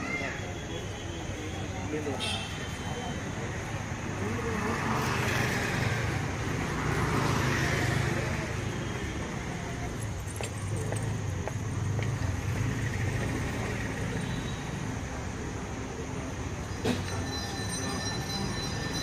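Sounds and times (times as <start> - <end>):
faint voices: 0.0 - 19.0
road traffic rumble: 0.0 - 19.0.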